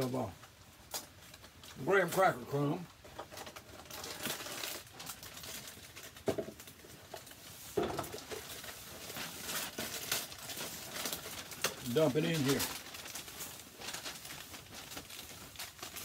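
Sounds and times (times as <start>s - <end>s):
plastic packet crinkling: 0.9s - 16.0s.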